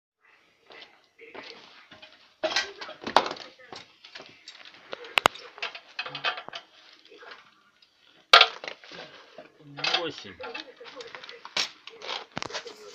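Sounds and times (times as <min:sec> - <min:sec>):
indistinct talking: 0:00.2 - 0:12.9.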